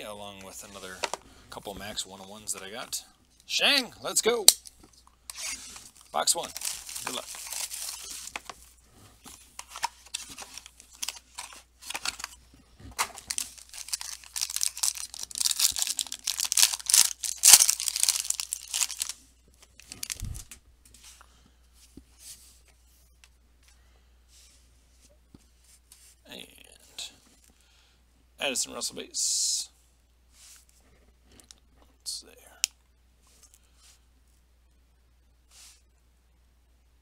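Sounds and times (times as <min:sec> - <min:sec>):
plastic wrapping torn and crumpled: 0:05.3 - 0:08.4, 0:13.0 - 0:20.6.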